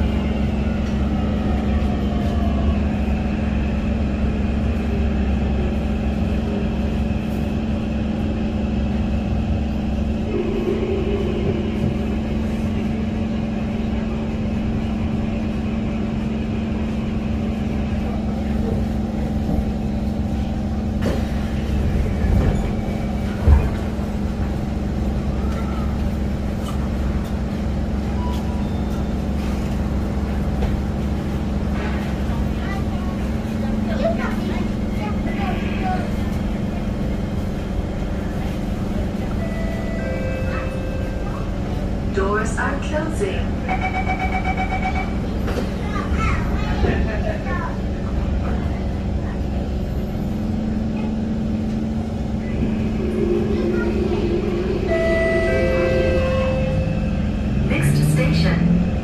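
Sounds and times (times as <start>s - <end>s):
train running rumble: 0.0s - 59.0s
onboard equipment hum: 9.6s - 14.0s, 51.5s - 57.1s
train stopping thump: 20.9s - 24.5s.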